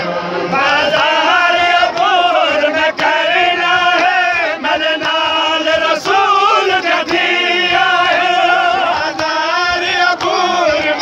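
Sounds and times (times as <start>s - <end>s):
men chanting a lament: 0.5s - 11.0s.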